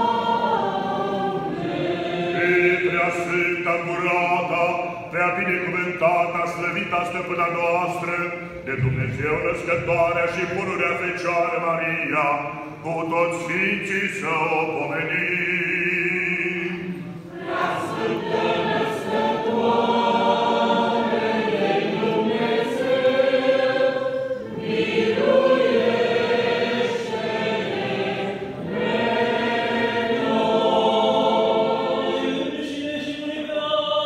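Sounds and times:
choir singing liturgical chant: 0.0 - 34.0.

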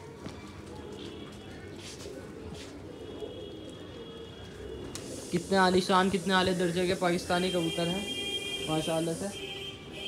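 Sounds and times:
pigeons cooing: 0.0 - 7.2.

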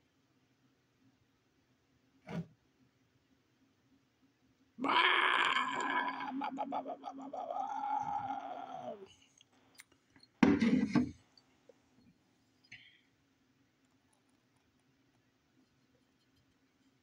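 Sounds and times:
man's drawn-out vocal sound: 4.8 - 9.2
man laughing: 6.3 - 7.6.

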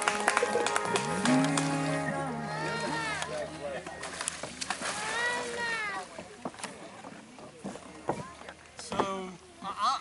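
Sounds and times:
water splashing and sloshing: 0.0 - 9.8
people's voices: 0.0 - 10.0.

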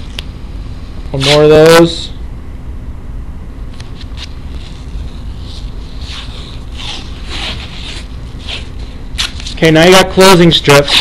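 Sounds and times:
steady low hum: 0.0 - 11.0
tape peeling off roll: 3.8 - 9.6, 10.8 - 11.0.

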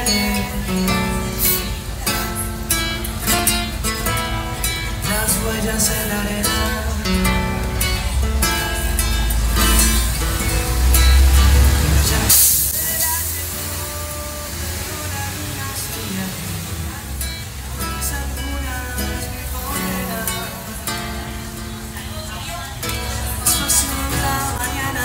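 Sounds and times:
man singing: 0.0 - 2.8, 4.0 - 25.0
strummed acoustic guitar: 0.0 - 25.0
brief hiss: 11.4 - 16.3.

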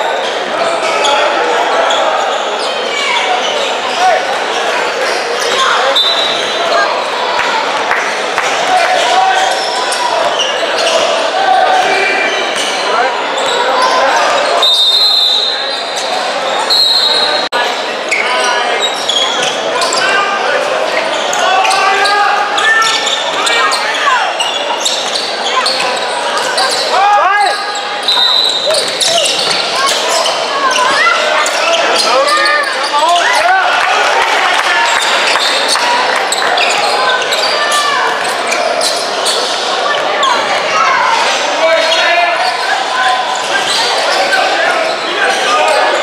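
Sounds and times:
people shouting and chatting: 0.0 - 46.0.

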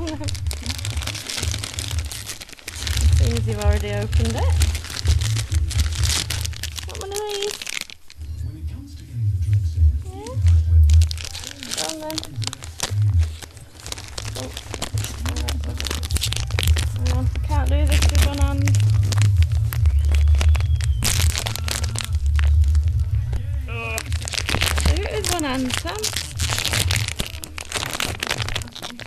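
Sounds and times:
paper rustling and ripping: 0.0 - 8.3, 10.1 - 29.0
dog tearing plastic packets: 0.0 - 8.8, 9.5 - 29.0.

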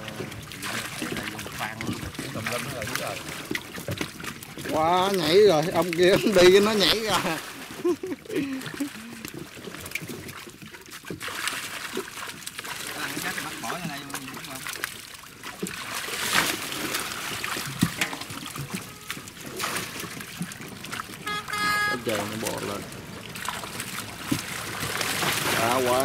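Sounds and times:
fish thrashing in water: 0.0 - 26.0
water splashing and sloshing: 0.0 - 26.0
water streaming through net mesh: 0.0 - 26.0.

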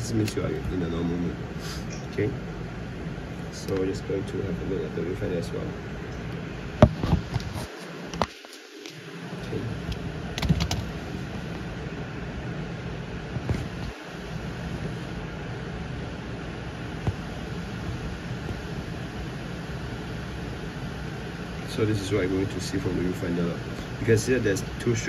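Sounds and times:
machine-like room hum: 0.0 - 25.0.

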